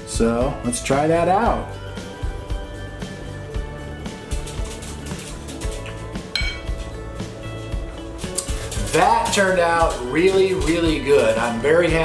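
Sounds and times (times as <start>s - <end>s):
guitar music: 0.6s - 12.0s
cutlery clinking on a plate: 6.3s - 6.8s.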